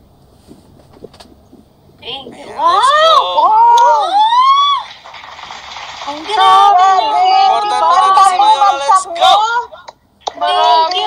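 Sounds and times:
excited exclamation: 0:02.3 - 0:05.0.

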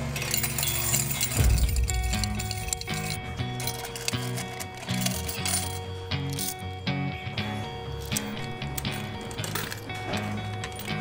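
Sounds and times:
coins clinking on metal tray: 0:00.0 - 0:06.8, 0:07.9 - 0:11.0
background music: 0:00.0 - 0:11.0.

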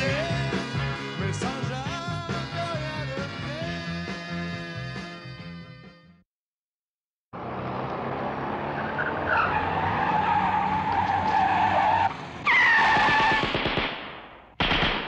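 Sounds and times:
music: 0:00.0 - 0:06.2
car engine running hard: 0:07.4 - 0:11.1
tyres squealing: 0:08.8 - 0:13.4.

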